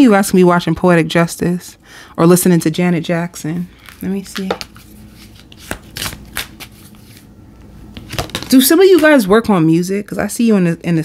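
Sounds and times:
cards being shuffled: 3.8s - 7.3s, 7.9s - 9.3s.

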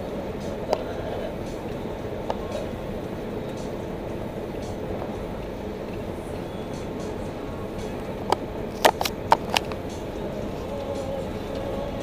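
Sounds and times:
vehicle road and engine noise: 0.0s - 12.0s.

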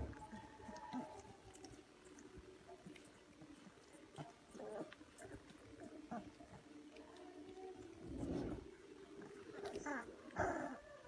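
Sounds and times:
puppies whimpering and yipping: 0.0s - 11.0s.

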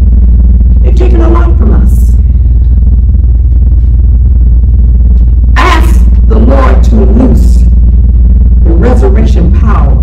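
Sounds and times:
low hum: 0.0s - 10.0s
woman preaching: 0.8s - 2.5s, 5.4s - 10.0s.

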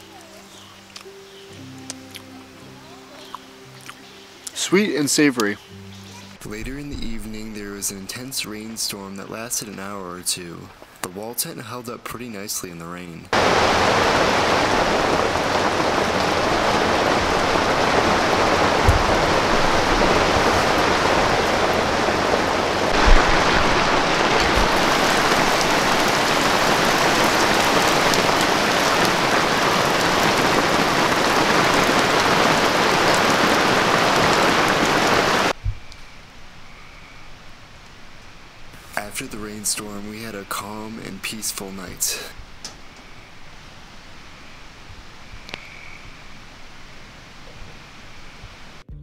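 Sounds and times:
heavy rain on canvas tent: 0.0s - 1.0s, 13.3s - 36.6s
low thuds: 6.4s - 8.8s, 16.5s - 26.1s.

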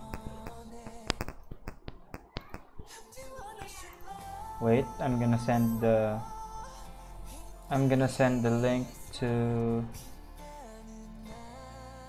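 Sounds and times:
keyboard or mouse clicks: 0.0s - 2.9s
faint background music: 2.4s - 12.0s.

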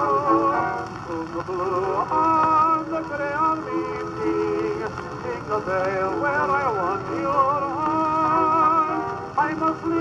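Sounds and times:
record surface hiss and crackle: 0.0s - 10.0s.

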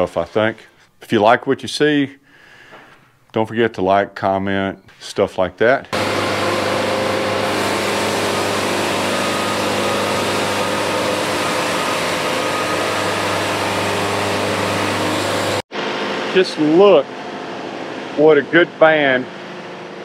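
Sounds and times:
sawmill engine drone: 5.9s - 20.0s.

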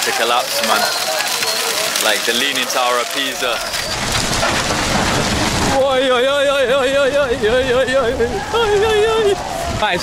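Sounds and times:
bonfire roaring and crackling: 0.0s - 10.0s
wavering voice: 0.6s - 1.0s.

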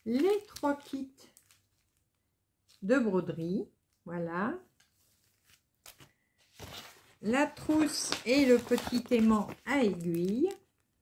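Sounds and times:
plastic packets rustling: 0.0s - 2.9s, 5.0s - 11.0s.

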